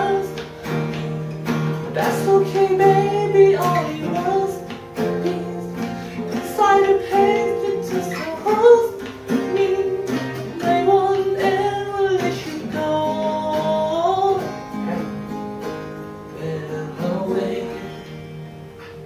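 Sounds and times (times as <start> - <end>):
man singing slow melody: 0.0 - 0.6, 1.8 - 15.4, 16.3 - 18.4
acoustic guitars playing: 0.0 - 19.0.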